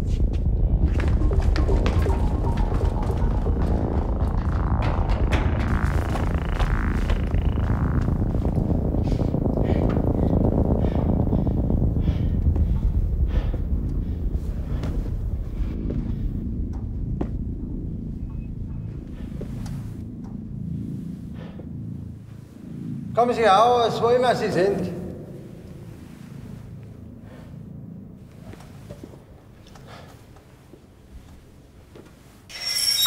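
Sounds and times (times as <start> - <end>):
low throbbing drone: 0.0 - 31.3.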